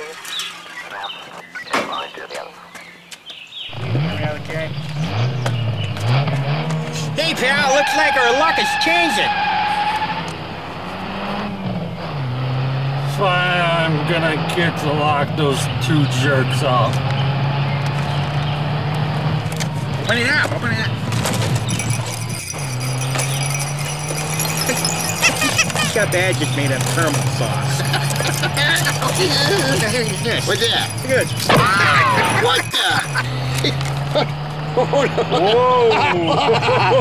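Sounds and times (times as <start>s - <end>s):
car engine accelerating: 3.7s - 37.0s
small metal pieces clinking: 21.0s - 34.2s.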